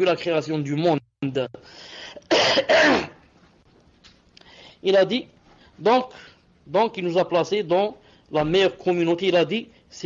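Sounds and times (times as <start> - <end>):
man coughing: 2.2 - 3.2.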